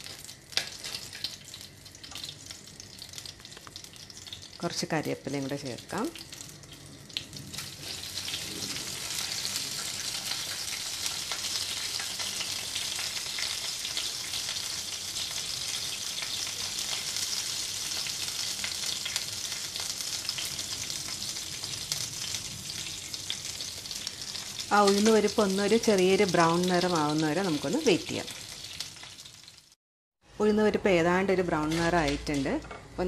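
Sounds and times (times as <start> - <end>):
seeds sizzling in hot oil: 0.0 - 29.8.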